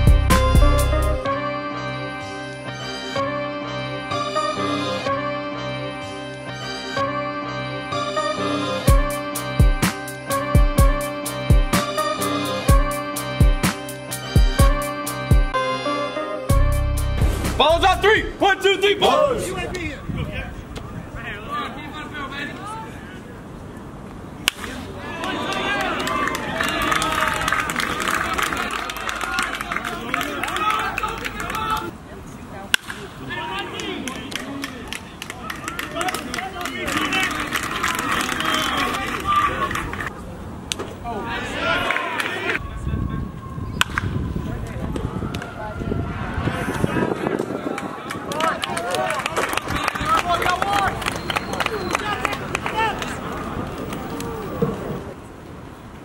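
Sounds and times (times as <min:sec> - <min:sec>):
music of sustained chords: 0:00.0 - 0:17.6
spectators' voices: 0:17.6 - 0:23.8, 0:24.4 - 0:55.2.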